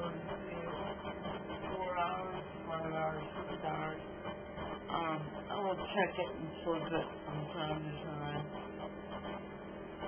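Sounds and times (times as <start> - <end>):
person talking: 0.0 - 4.0, 4.9 - 8.5
faint low hum: 0.0 - 10.0.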